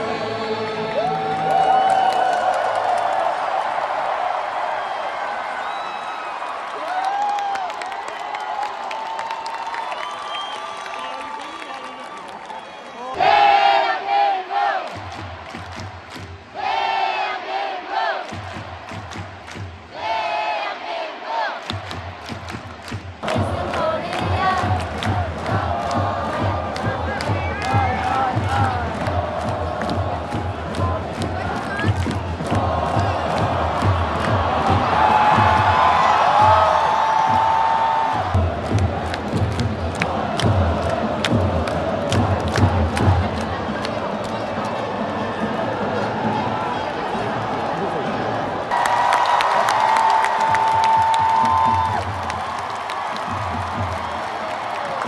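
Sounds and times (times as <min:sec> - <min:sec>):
stadium crowd chanting and singing: 0:00.0 - 0:02.0, 0:13.0 - 0:55.0.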